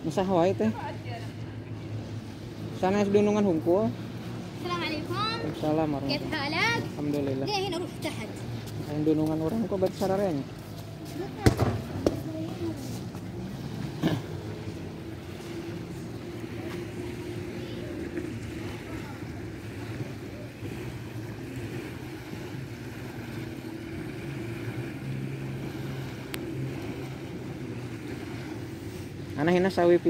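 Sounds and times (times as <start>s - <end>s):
faint outdoor background noise: 0.0s - 30.0s
low motor hum: 0.0s - 30.0s.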